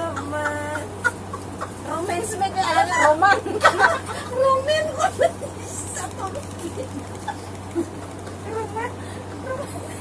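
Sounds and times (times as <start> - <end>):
women laughing: 0.0 - 10.0
high-pitched cackling laugh: 4.9 - 8.2.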